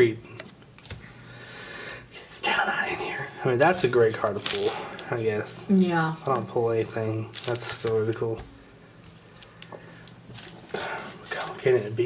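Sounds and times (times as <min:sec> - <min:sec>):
room hum: 0:00.0 - 0:12.0
foil pack crinkling: 0:03.8 - 0:05.5, 0:06.2 - 0:08.4, 0:09.3 - 0:11.7.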